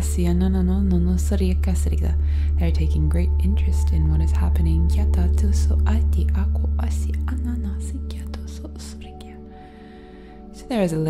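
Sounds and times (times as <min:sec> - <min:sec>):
deep steady drone: 0:00.0 - 0:10.9.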